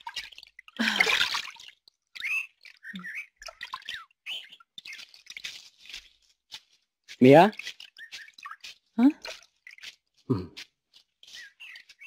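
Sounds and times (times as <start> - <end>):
water dripping: 0.0 - 12.0.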